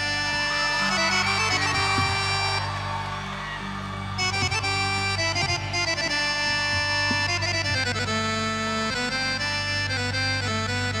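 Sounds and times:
live band playing sustained chords: 0:00.0 - 0:11.0.

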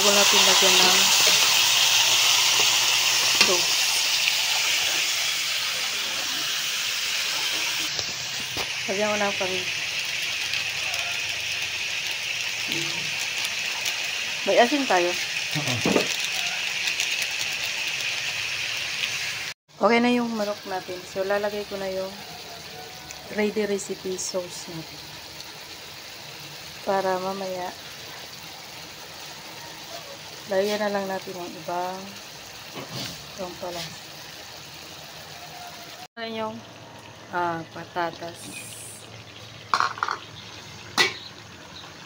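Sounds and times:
chicken frying in hot oil: 0:00.0 - 0:42.0.

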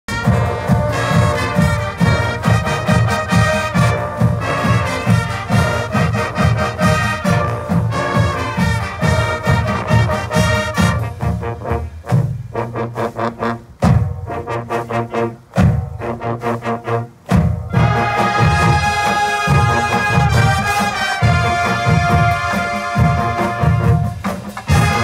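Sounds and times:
marching band brass: 0:00.1 - 0:25.0
steady low drum beat: 0:00.1 - 0:25.0.

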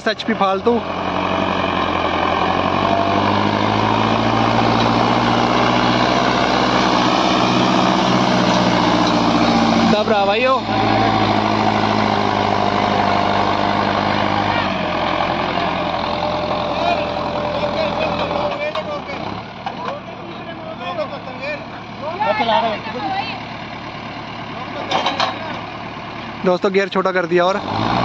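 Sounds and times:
tractor engine drone: 0:00.0 - 0:28.0
people's voices: 0:09.0 - 0:27.7.

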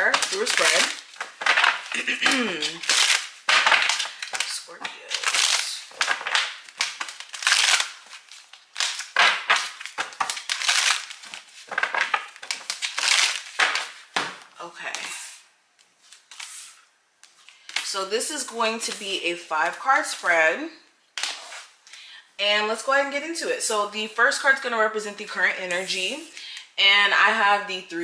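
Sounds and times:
cards being shuffled: 0:00.0 - 0:14.4.

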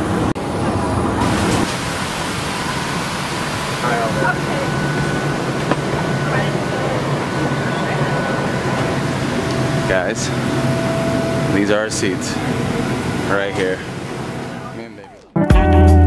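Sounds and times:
air-conditioning low hum: 0:00.0 - 0:15.3
faint passenger voices: 0:03.7 - 0:15.4.

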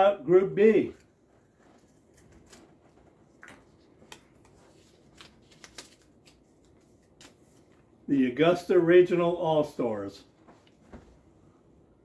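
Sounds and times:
paper crackling and rustling: 0:01.2 - 0:07.9.

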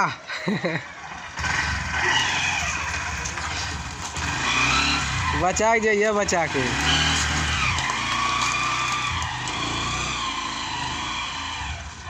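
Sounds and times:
small motorcycle engine running: 0:00.6 - 0:12.0.

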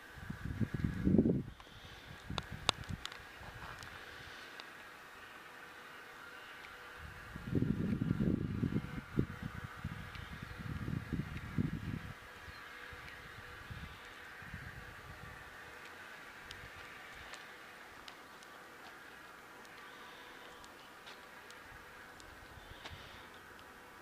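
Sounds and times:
insects buzzing: 0:00.0 - 0:24.0.

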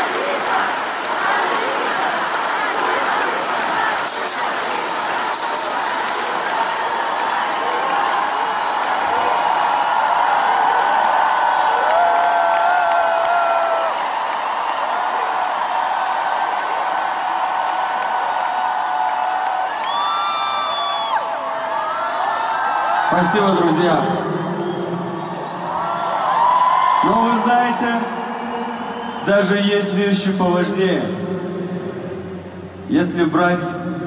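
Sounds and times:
concert crowd cheering: 0:00.0 - 0:34.0.

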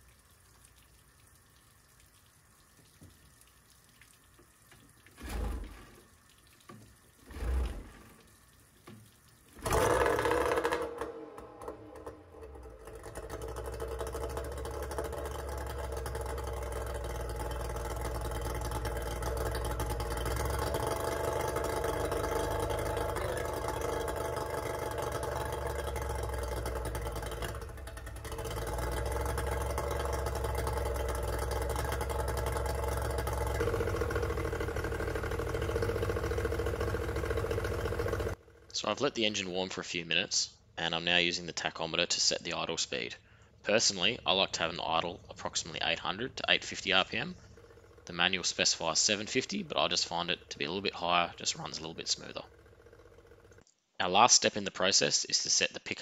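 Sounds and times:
outboard motor idling: 0:00.0 - 0:39.1, 0:43.2 - 0:53.7.

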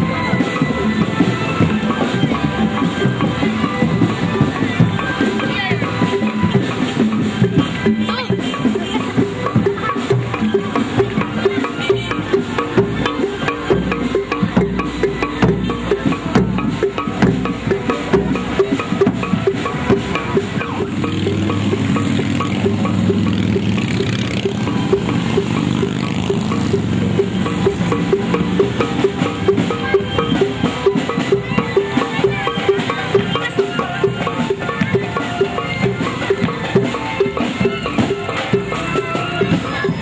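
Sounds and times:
large barrel drum: 0:00.0 - 0:40.0
motorbike engine hum: 0:20.4 - 0:30.1.

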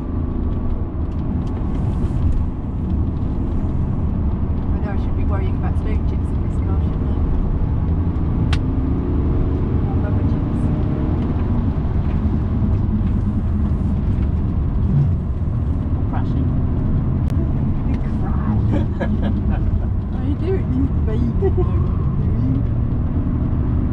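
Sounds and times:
car engine pulling hard: 0:00.0 - 0:23.9
road and tyre noise: 0:00.0 - 0:23.9.

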